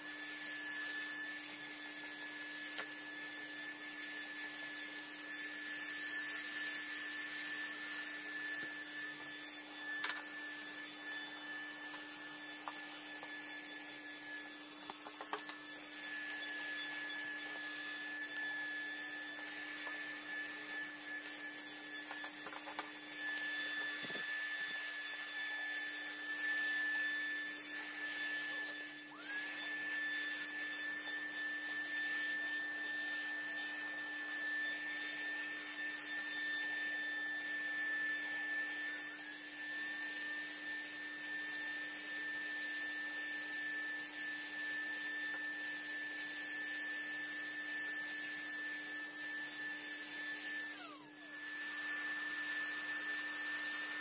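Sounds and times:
handheld vacuum whining: 0.0 - 54.0.

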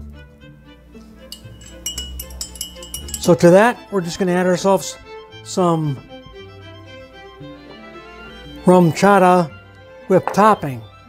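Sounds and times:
quiet background music: 0.0 - 11.0
spoon clinking against glass mug: 1.3 - 3.8.

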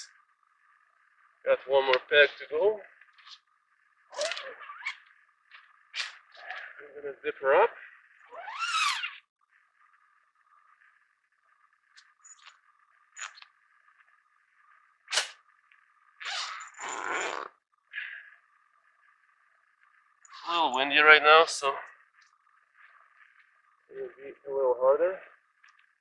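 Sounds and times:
tent zipper pulled shut: 8.4 - 9.2, 15.1 - 15.4, 16.2 - 17.6.

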